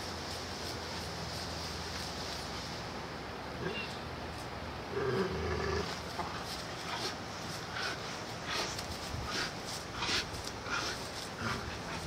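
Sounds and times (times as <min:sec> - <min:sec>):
scuffs and rustles: 0:00.0 - 0:03.1, 0:05.8 - 0:12.0.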